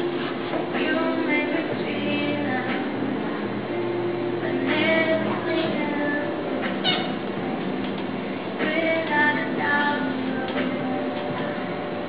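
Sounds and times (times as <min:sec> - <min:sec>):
pop song: 0:00.0 - 0:12.0.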